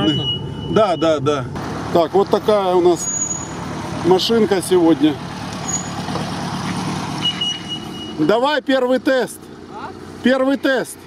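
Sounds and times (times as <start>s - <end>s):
vehicle engine idling: 0.0s - 11.0s.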